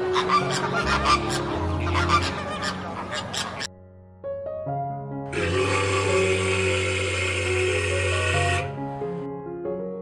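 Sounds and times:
soft piano music: 0:00.0 - 0:06.0, 0:07.8 - 0:10.0
walrus bellowing: 0:05.4 - 0:08.8.

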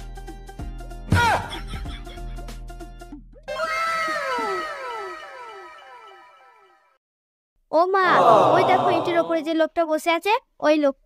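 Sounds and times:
comic downward gliding tones: 0:08.1 - 0:09.4.

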